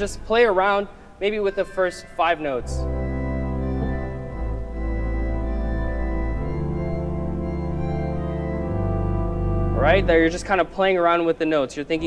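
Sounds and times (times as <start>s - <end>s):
pipe organ playing jazz chords: 0.0s - 12.0s.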